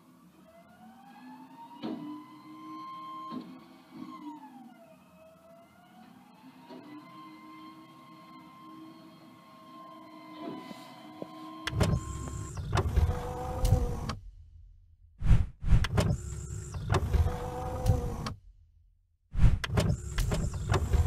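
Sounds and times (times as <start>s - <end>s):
mechanical sliding whine with clunks: 1.2s - 14.4s, 15.2s - 18.6s, 19.4s - 21.0s.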